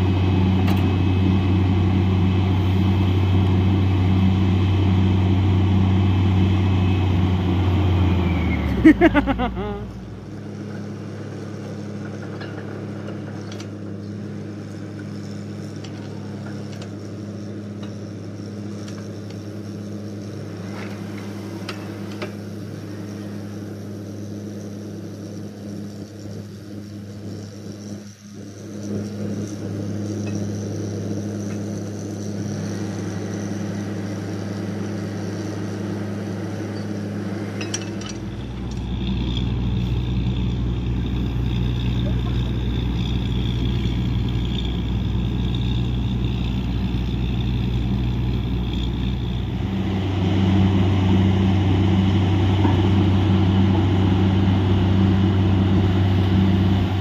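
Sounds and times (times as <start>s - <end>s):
drilling rig low drone: 0.0s - 57.0s.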